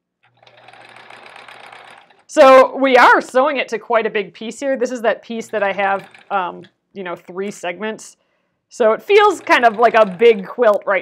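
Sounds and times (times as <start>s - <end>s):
sewing machine stitching: 0.2s - 2.6s, 5.4s - 6.7s, 9.1s - 10.8s.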